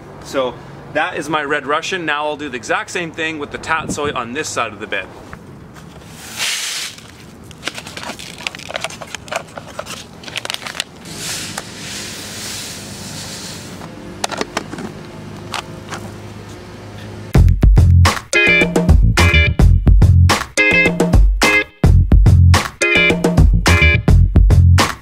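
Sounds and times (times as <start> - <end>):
seeds pouring rattling hiss: 6.2 - 7.2, 11.0 - 13.8
funky guitar music: 17.4 - 24.9.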